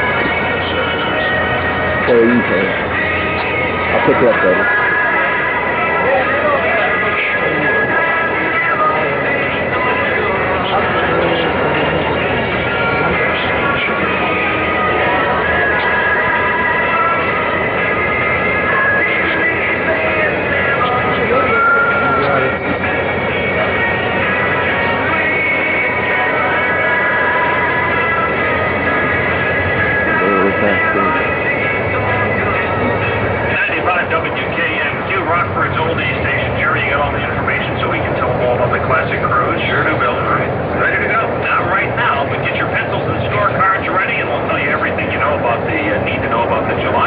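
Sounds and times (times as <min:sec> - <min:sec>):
indistinct voices: 0:00.0 - 0:47.0
music with long held notes: 0:00.0 - 0:47.0.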